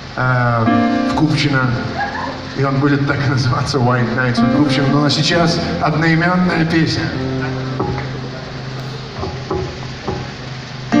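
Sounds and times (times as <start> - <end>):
amplified band playing: 0.6 - 11.0
upright double bass plucking: 1.3 - 11.0
low held tone: 4.4 - 11.0.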